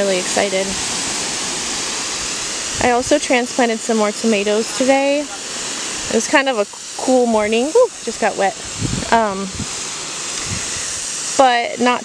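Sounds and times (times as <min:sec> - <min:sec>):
garden hose spraying water: 0:00.0 - 0:12.0.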